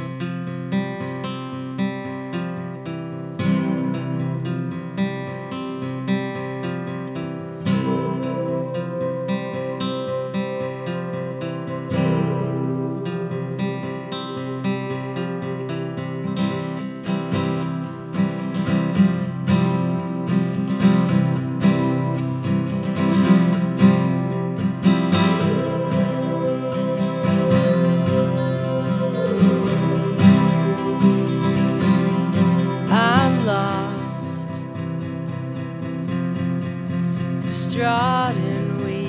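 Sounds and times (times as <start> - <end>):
acoustic guitar strumming chords: 0.0 - 39.0.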